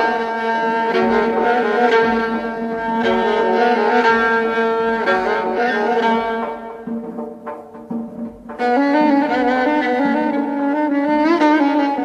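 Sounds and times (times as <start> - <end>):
bowed strings holding notes: 0.0 - 12.0.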